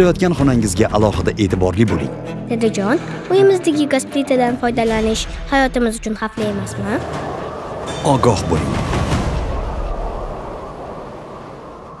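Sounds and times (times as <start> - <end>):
low rumbling sound effect: 6.5 - 12.0.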